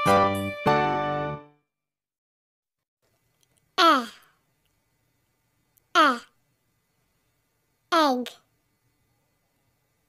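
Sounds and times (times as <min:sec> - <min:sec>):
person saying vowel sound: 0:03.8 - 0:04.3, 0:05.9 - 0:06.4, 0:07.9 - 0:08.4.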